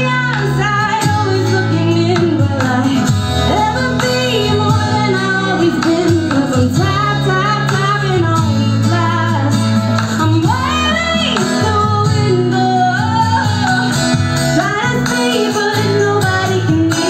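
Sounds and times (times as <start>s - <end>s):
instrumental accompaniment: 0.0s - 17.0s
woman singing into microphone: 0.0s - 17.0s.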